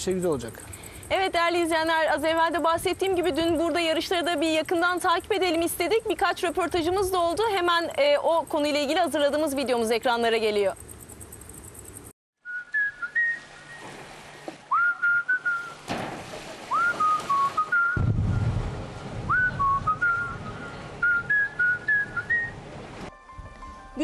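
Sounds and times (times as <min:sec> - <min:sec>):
person whistling a tune: 0:12.4 - 0:13.8, 0:14.7 - 0:15.8, 0:16.7 - 0:18.1, 0:19.3 - 0:22.6
low rumble: 0:18.0 - 0:21.3.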